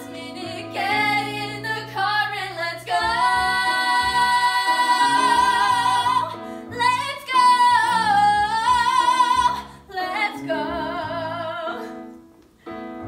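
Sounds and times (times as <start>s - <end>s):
women singing a duet: 0.0s - 12.1s.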